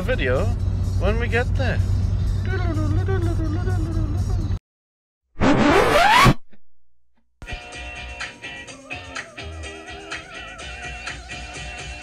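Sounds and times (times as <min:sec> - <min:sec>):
background music: 0:07.5 - 0:12.0.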